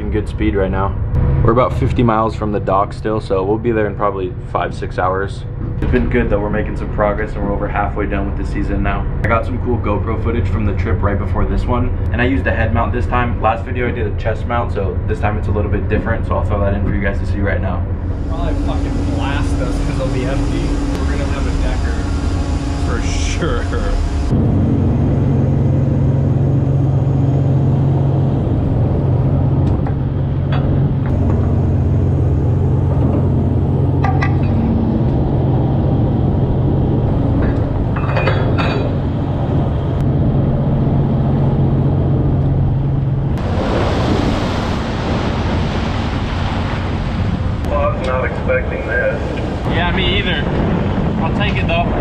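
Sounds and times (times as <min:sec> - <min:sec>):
trawler engines droning: 0:00.0 - 0:52.0
loud rushing hiss: 0:18.0 - 0:24.4.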